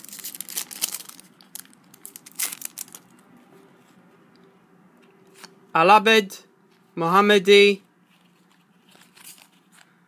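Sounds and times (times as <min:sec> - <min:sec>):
trading cards rustling: 0:00.0 - 0:03.2, 0:08.0 - 0:10.0.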